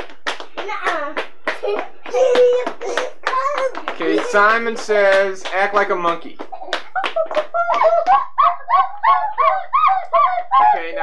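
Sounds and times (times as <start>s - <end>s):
rhythmic hand claps: 0.0s - 11.0s
children calling out: 8.8s - 11.0s.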